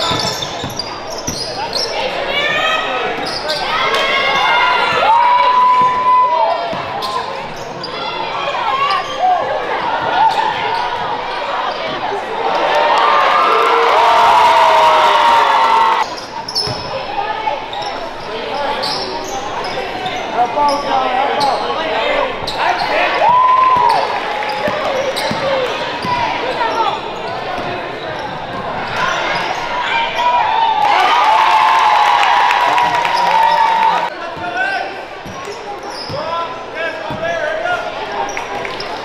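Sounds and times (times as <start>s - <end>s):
sneaker squeaks: 0.0s - 5.0s, 5.7s - 12.2s, 16.0s - 30.4s, 32.9s - 37.4s, 38.2s - 39.0s.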